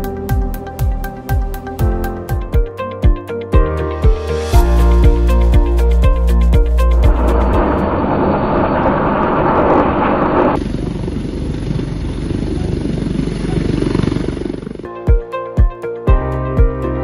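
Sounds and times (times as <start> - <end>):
helicopter rotor and turbine: 6.3 - 15.2
thin high whine: 6.6 - 10.7.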